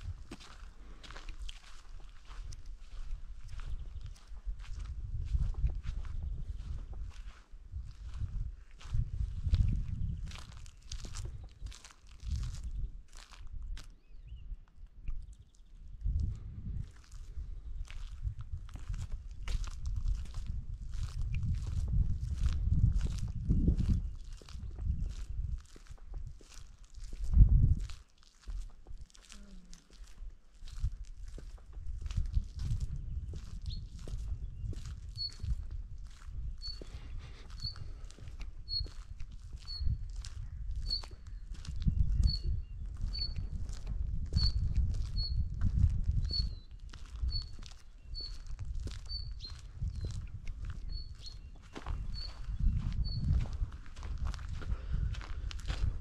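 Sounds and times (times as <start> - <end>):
footsteps walking: 0.0 - 9.7, 17.8 - 40.4, 51.6 - 56.0
bird chirping: 36.6 - 37.9, 46.3 - 48.4, 49.1 - 50.0, 50.8 - 53.3.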